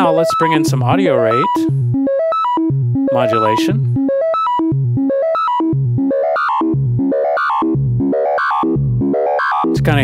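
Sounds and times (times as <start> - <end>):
synthesizer note sequence: 0.0 - 9.8.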